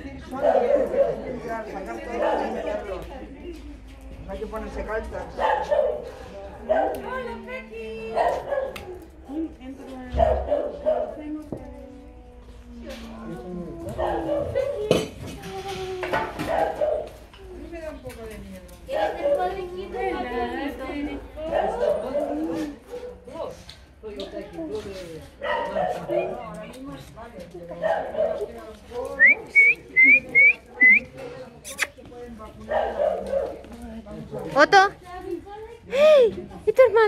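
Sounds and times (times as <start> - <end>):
person whistling short notes: 29.2 - 31.1.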